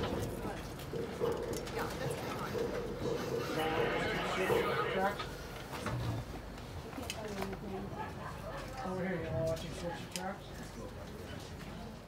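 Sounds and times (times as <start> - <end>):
passenger chatter: 0.0 - 12.0.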